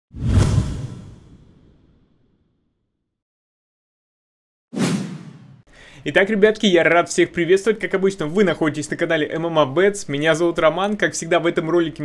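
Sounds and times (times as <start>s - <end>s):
whoosh with deep boom: 0.2s - 2.0s.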